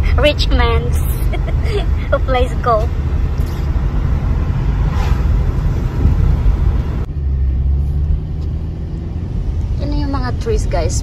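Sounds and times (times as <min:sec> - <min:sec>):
low hum: 0:00.0 - 0:09.8
car engine and tyre rumble: 0:00.0 - 0:11.0.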